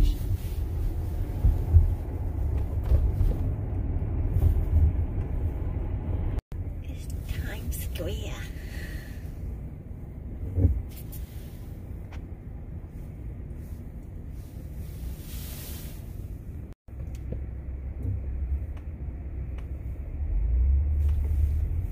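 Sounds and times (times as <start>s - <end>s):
tyre and road rumble: 0.0s - 21.9s.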